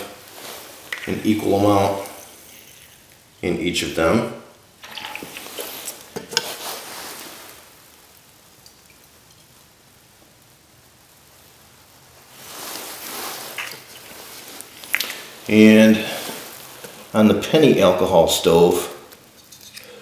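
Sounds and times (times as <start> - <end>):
liquid trickling: 4.8 - 6.2.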